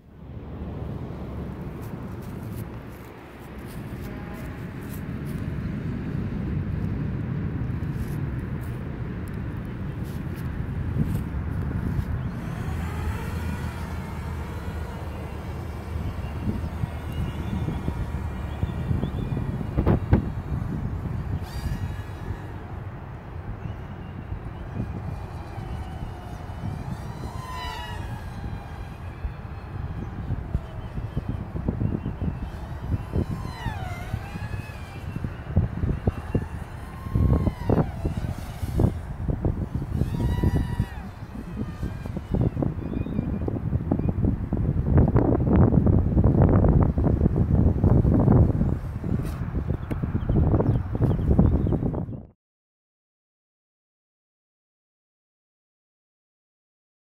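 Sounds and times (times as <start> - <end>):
wind buffeting microphone: 0.0 - 52.3
short gliding whistles: 11.8 - 44.2.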